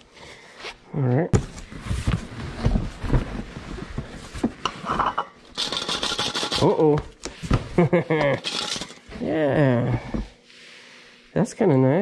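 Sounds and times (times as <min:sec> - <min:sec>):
tin clinking: 0:08.4 - 0:09.0.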